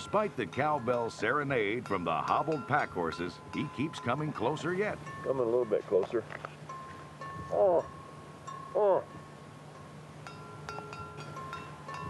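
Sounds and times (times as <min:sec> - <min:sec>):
cowbells clanking and ringing: 0:00.0 - 0:12.0.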